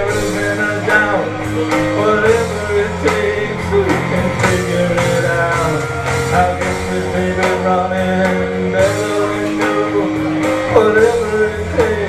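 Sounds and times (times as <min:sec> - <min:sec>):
guitar: 0:00.0 - 0:12.0
live rock band playing: 0:00.0 - 0:12.0
person singing: 0:00.0 - 0:12.0.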